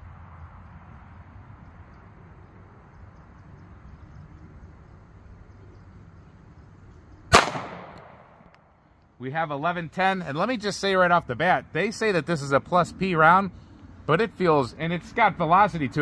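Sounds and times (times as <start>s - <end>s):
low outdoor background: 0.0s - 16.0s
pistol shot with echo: 7.3s - 8.5s.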